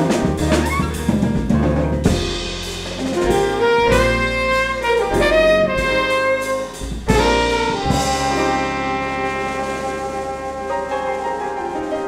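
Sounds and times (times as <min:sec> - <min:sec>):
drums: 0:00.0 - 0:12.0
piano: 0:00.0 - 0:12.0
steady low bass note: 0:02.0 - 0:10.9
alto saxophone sustaining notes: 0:03.4 - 0:12.0
trumpet sustaining notes: 0:03.7 - 0:11.4.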